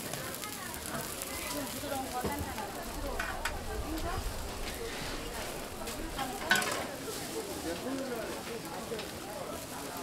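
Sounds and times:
pancakes sizzling in oil: 0.0 - 10.0
metal spatula clanking on griddle: 3.2 - 3.6, 6.1 - 6.9.

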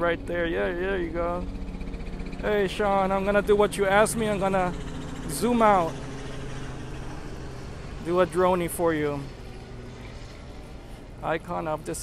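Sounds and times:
man's voice: 2.4 - 4.7, 11.2 - 12.0.

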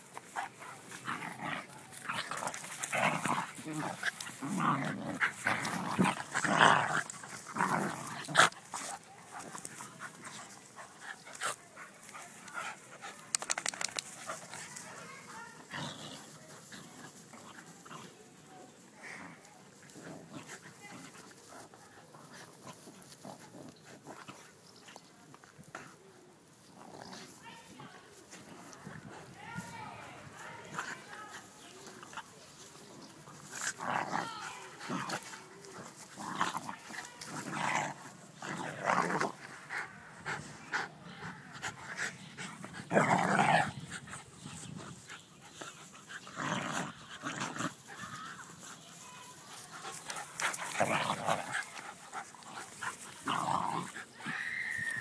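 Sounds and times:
dogs vocalising in play: 0.0 - 29.4, 30.2 - 55.0.

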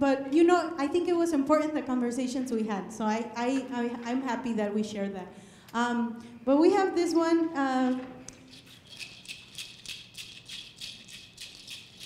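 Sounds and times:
hand rattle shaken: 8.4 - 12.0.

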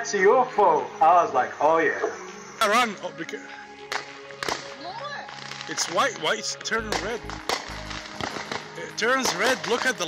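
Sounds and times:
fireworks popping: 3.8 - 10.0.

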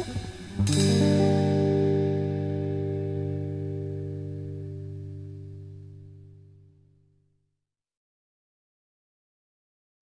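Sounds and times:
jazz guitar chord ringing: 0.0 - 7.2.

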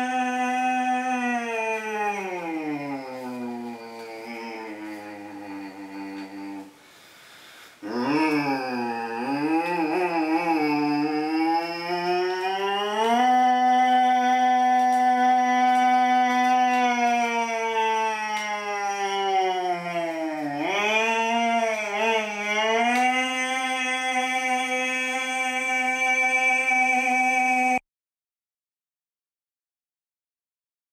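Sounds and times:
man imitating motorbike engine: 0.0 - 6.8, 7.8 - 27.8.

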